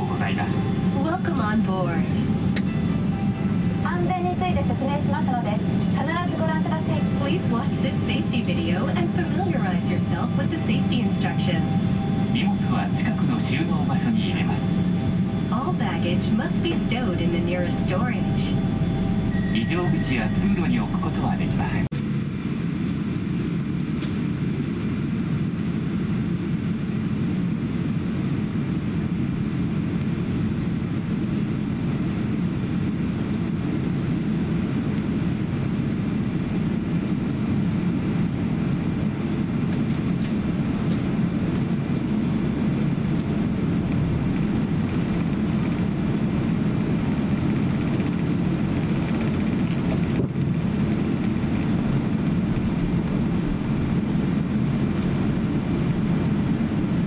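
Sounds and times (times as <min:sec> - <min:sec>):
airplane cabin rumble while taxiing: 0:00.0 - 0:57.0.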